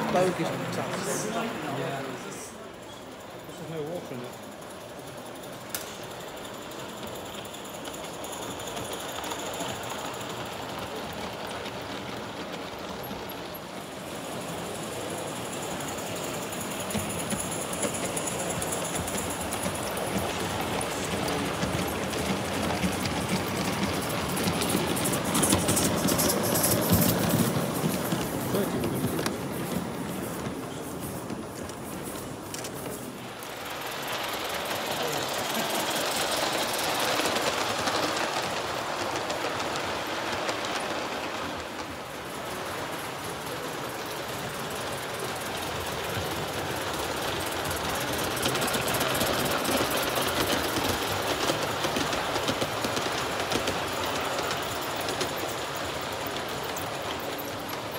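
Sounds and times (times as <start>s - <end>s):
model steam train rattling: 0.0s - 57.9s.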